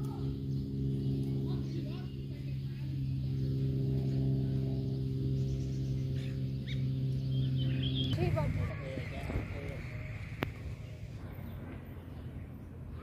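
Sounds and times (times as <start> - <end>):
low drone background music: 0.0 - 13.0.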